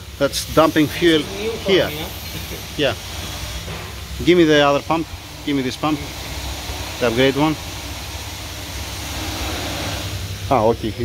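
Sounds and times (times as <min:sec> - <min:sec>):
electric pump humming: 0:00.0 - 0:11.0.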